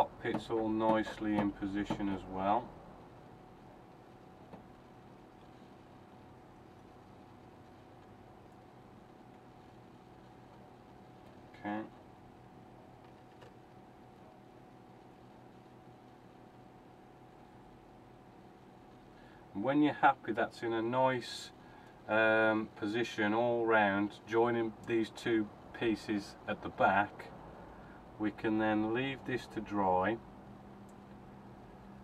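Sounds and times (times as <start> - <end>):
faint steady hum: 0.0 - 32.0.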